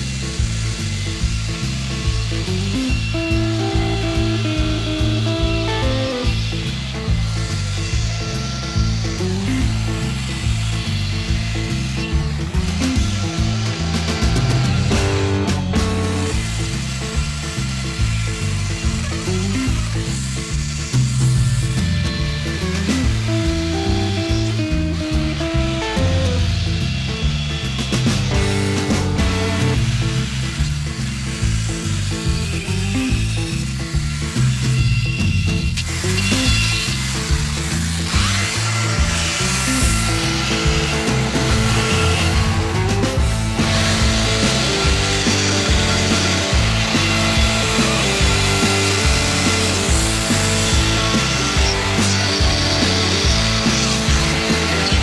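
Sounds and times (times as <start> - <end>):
background music: 0.0 - 55.0
chainsaw cutting wood: 0.0 - 55.0.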